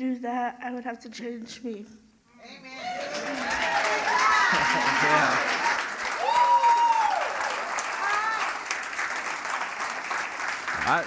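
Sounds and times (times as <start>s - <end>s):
person cheering: 2.6s - 8.6s
congregation applauding: 2.8s - 11.0s.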